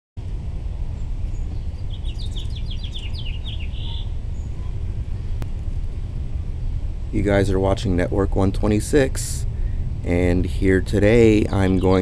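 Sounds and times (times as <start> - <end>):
low outdoor rumble: 0.2 - 12.0
songbird chirping: 0.9 - 5.5, 11.0 - 12.0.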